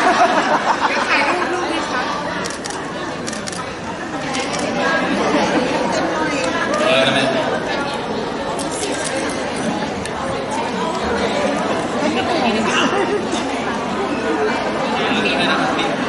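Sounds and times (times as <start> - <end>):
overlapping chatter: 0.0 - 16.0.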